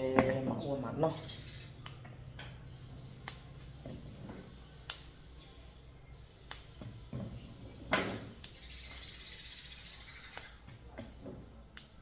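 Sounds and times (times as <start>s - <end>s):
green beans snapping: 3.2s - 3.5s, 4.8s - 5.2s, 6.4s - 6.8s, 8.4s - 8.6s, 11.7s - 12.0s.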